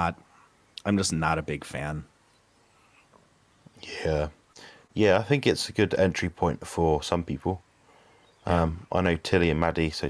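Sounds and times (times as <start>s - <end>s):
person speaking: 0.0s - 2.1s, 3.8s - 4.4s, 8.4s - 10.0s.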